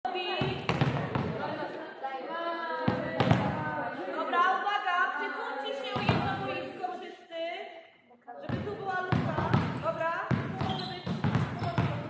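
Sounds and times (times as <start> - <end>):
girls' voices echoing: 0.1 - 12.0
volleyballs thumping: 0.3 - 1.6, 2.9 - 3.7, 6.0 - 6.6, 8.4 - 12.0.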